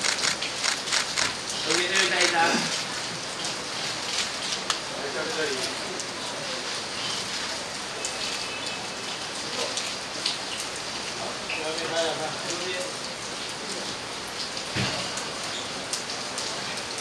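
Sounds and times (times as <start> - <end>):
camera shutter clicks: 0.0 - 1.4
crowd noise hiss: 0.0 - 17.0.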